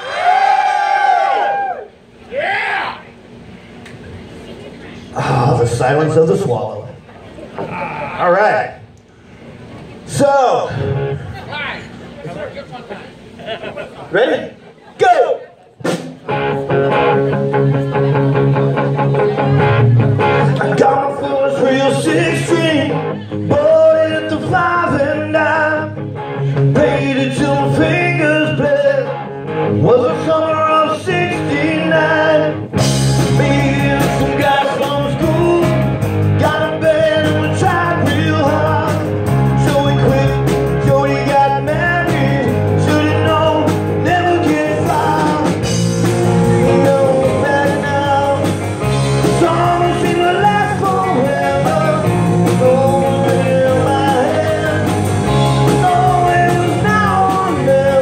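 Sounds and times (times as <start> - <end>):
live rock band: 15.3 - 58.0
drums and cymbals: 15.8 - 17.6, 32.8 - 58.0
man singing: 20.4 - 26.0, 26.6 - 58.0.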